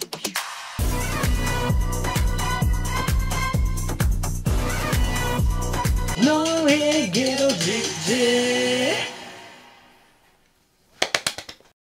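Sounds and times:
music: 0.0 - 10.2.

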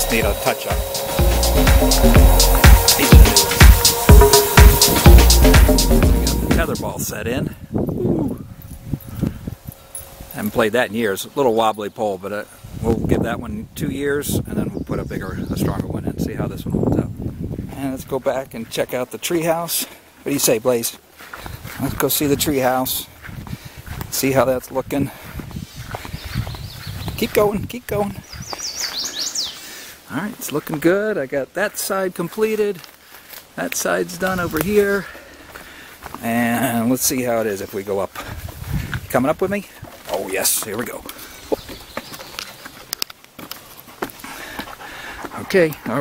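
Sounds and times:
songbird singing falling notes: 28.2 - 29.6, 41.3 - 42.6.

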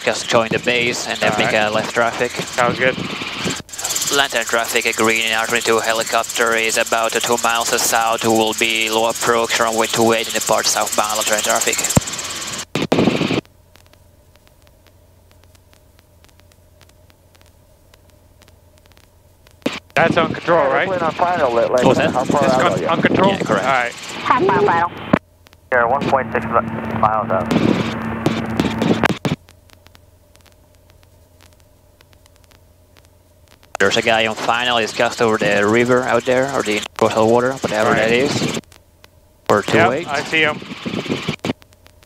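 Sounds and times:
intercom radio hiss: 0.0 - 13.4, 19.7 - 29.2, 33.8 - 38.6, 39.5 - 41.4
faint steady hum: 0.0 - 42.0
thin tone: 3.7 - 12.4.

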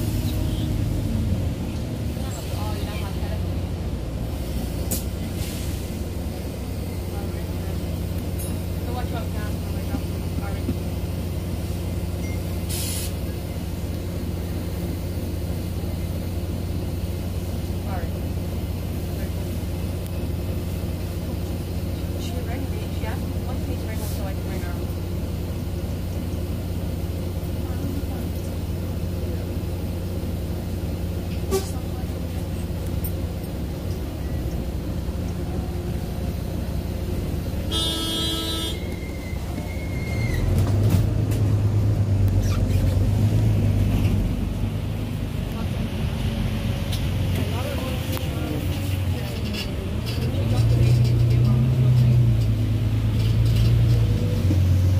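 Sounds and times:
bus diesel engine hum: 0.0 - 54.9
road noise: 0.0 - 54.9
vehicle horn toot: 31.5 - 31.8, 37.7 - 39.1.

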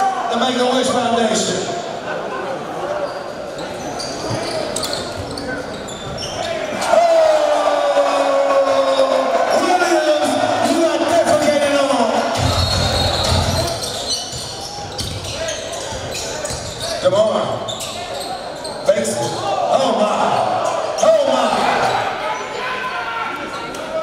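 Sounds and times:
crowd voices and shouts: 0.0 - 24.0.

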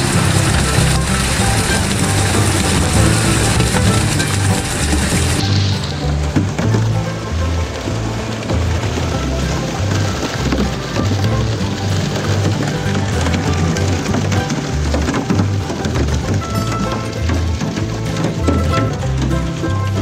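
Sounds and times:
background music with bass line: 0.0 - 20.0
water rushing and splashing: 0.0 - 20.0.

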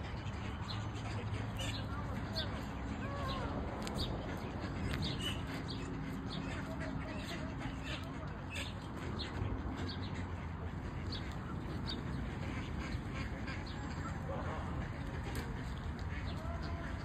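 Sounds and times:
ducks quacking: 0.0 - 17.0
geese calling: 0.0 - 17.0.

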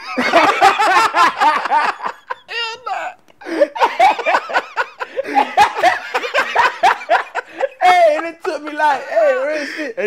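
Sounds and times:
men laughing hard: 0.0 - 10.0.

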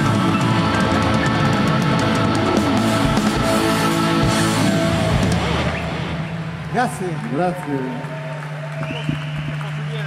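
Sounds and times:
rock band final chord: 0.0 - 6.2.

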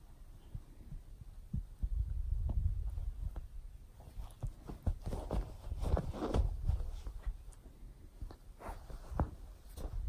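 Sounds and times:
rustling of fur and bedding: 2.3 - 10.0.

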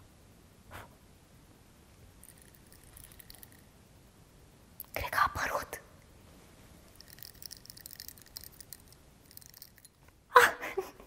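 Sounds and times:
hands handling small object: 2.2 - 3.6, 6.8 - 10.2.

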